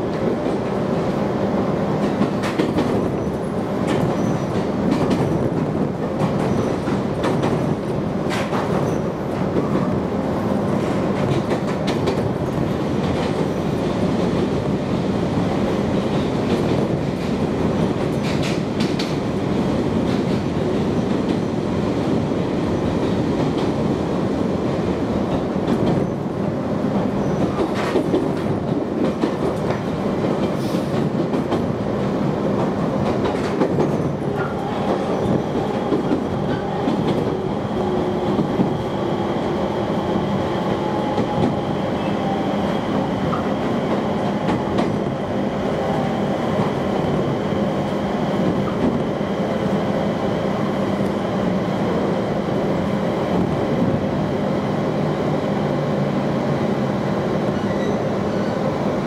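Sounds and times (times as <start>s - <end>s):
train wheels rumbling on rails: 0.0s - 59.0s.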